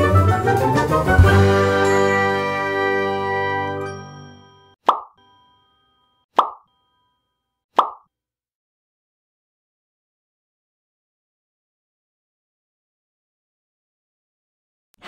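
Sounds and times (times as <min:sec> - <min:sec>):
short popping sound effects: 0:04.8 - 0:05.2, 0:06.4 - 0:06.7, 0:07.8 - 0:08.1.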